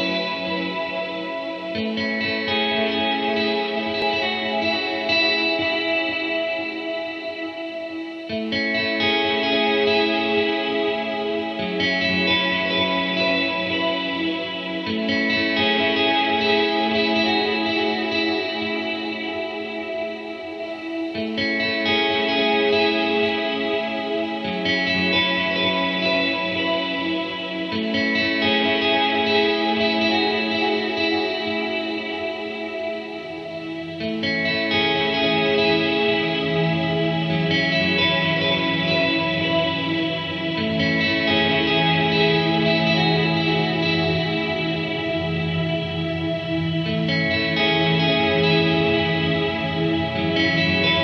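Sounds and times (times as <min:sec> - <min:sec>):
ambient electric guitar chords: 0:00.0 - 0:51.0.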